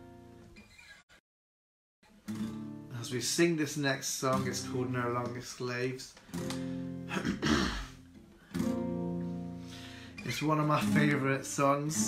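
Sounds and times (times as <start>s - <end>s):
acoustic guitar chords strummed: 6.2s - 12.0s
person clearing throat: 7.1s - 8.0s.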